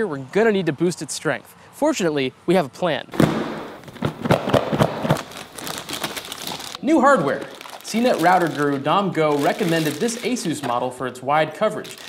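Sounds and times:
plastic bag crinkling: 3.8s - 10.9s, 11.8s - 12.0s.

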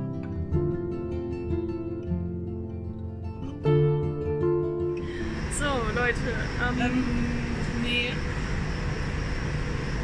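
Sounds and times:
faint steady hum: 5.0s - 10.0s
railway platform low rumble: 5.1s - 10.0s.

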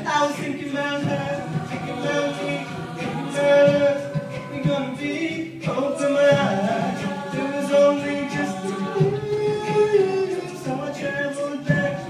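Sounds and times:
a cappella vocal harmonies: 0.0s - 12.0s
vocal percussion beat: 0.0s - 12.0s.

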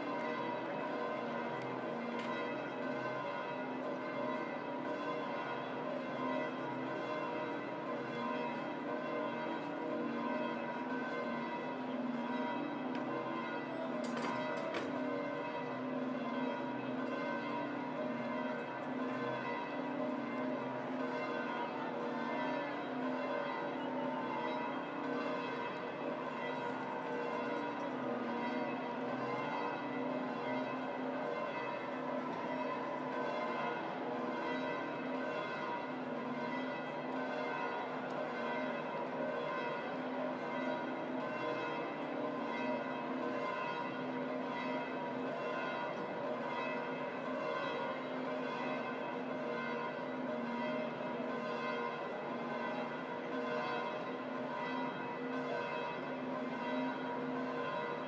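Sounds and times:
church bells pealing: 0.0s - 58.0s.

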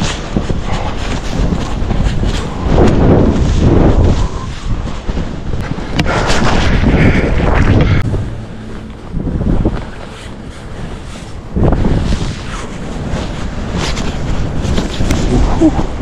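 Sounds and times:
skis running through powder snow: 0.0s - 16.0s
wind buffeting microphone: 0.0s - 16.0s.

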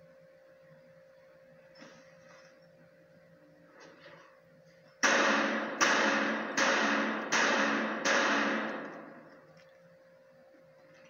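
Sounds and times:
gunshots echoing indoors: 5.0s - 9.5s.

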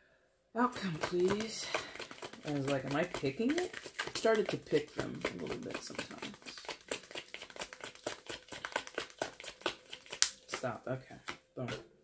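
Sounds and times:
person talking: 0.6s - 6.6s, 10.5s - 11.9s
cards being shuffled: 0.8s - 10.6s.

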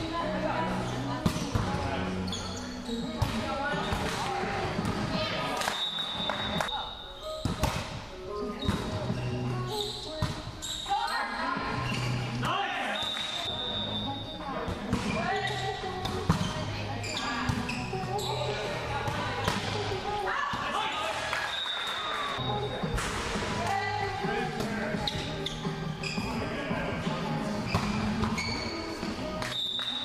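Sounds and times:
high-pitched shoe squeaks: 2.2s - 3.2s, 8.4s - 11.2s, 16.4s - 18.6s, 25.0s - 26.5s, 27.6s - 30.0s
volleyball slaps: 7.4s - 8.0s, 22.9s - 23.8s.

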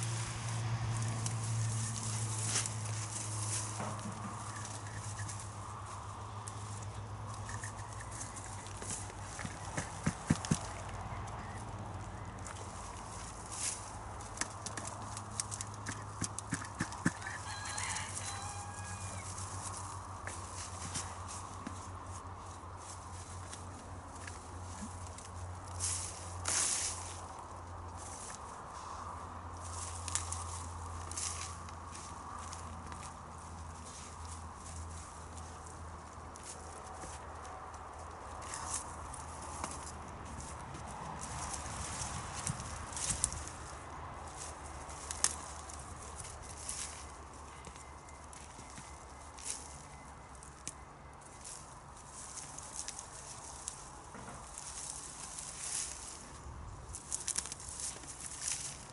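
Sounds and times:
flower stems rustling and snapping: 0.9s - 5.7s, 7.3s - 18.4s, 29.6s - 49.8s, 50.4s - 58.9s.

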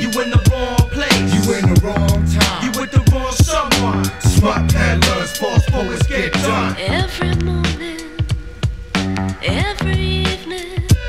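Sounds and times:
hip hop beat: 0.0s - 11.0s
vocals: 0.0s - 11.0s.

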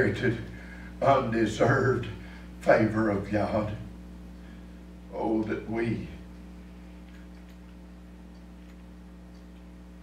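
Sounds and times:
electrical hum: 0.0s - 10.0s
faint irregular ticks: 6.3s - 9.9s.

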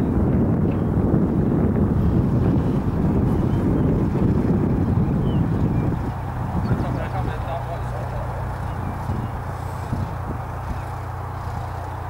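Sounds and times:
aircraft piston engine: 0.0s - 12.0s
wind rumble on microphone: 0.0s - 12.0s.

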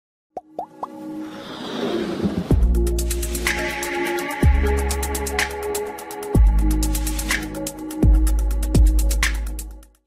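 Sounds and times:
music: 0.4s - 10.0s.

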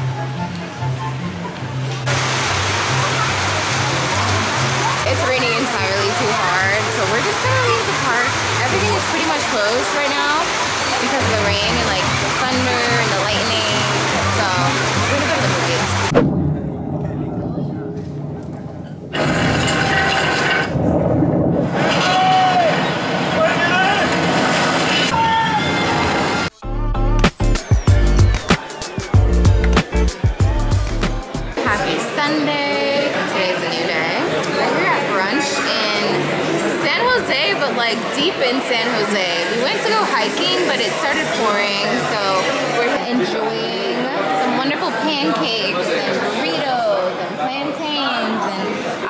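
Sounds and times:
waves: 1.8s - 16.2s
heavy rain on pavement: 2.0s - 16.2s, 19.2s - 25.2s
shouted voices: 21.9s - 24.2s, 25.1s - 26.3s
music with bass line: 26.6s - 31.8s.

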